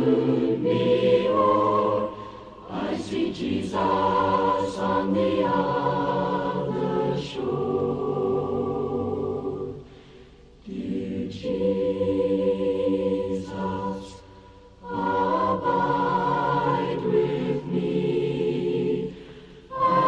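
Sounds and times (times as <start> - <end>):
family chorus singing a hymn: 0.0 - 20.0.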